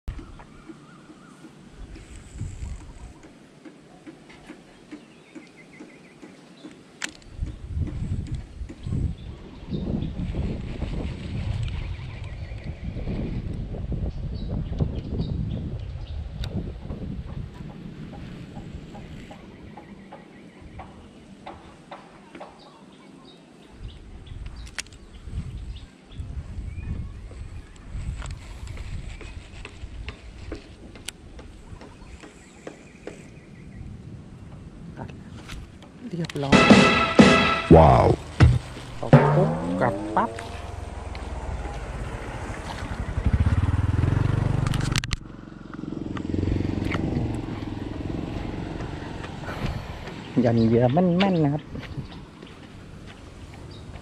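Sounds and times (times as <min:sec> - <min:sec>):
wind buffeting microphone: 0:00.1 - 0:03.4, 0:06.6 - 0:21.8, 0:23.7 - 0:36.5, 0:38.1 - 0:54.0.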